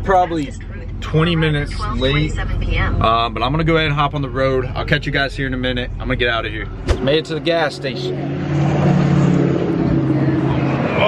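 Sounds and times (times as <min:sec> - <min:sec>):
car engine running: 0:00.0 - 0:11.0.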